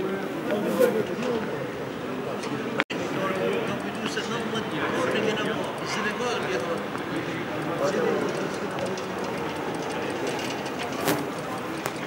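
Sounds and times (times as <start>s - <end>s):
low rumble of people in a hall: 0.0s - 12.0s.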